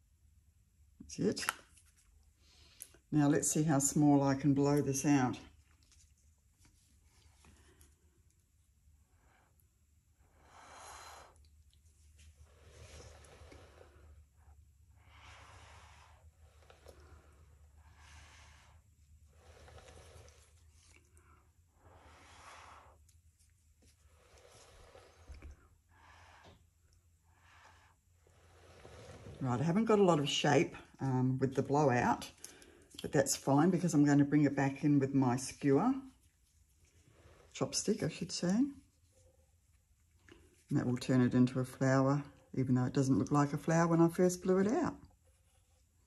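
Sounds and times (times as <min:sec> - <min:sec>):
breath blown through straw: 0:12.4 - 0:21.0, 0:21.7 - 0:23.2, 0:23.9 - 0:26.7.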